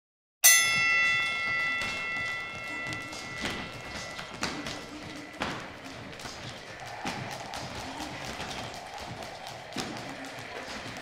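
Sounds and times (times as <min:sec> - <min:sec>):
boxing ring bell: 0:00.4 - 0:06.6.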